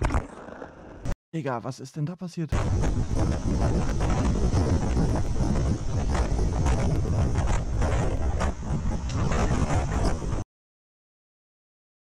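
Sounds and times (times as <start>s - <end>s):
wind noise on microphone: 2.6s - 10.4s.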